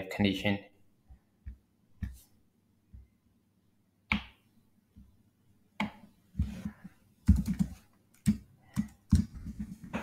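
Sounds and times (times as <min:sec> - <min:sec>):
computer keyboard typing: 0:07.2 - 0:09.7.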